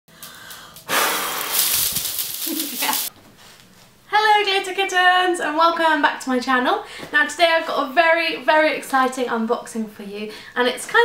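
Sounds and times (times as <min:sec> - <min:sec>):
woman blowing hard breath: 0:00.2 - 0:01.8.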